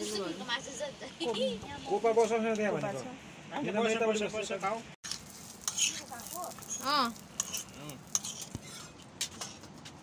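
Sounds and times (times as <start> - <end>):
metal spatula scraping frying pan: 5.6 - 9.0.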